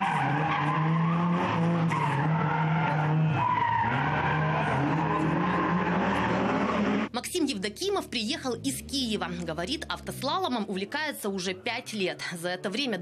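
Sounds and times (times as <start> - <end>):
car engine at high revs: 0.0 - 7.1
tyres squealing on asphalt: 0.0 - 7.1.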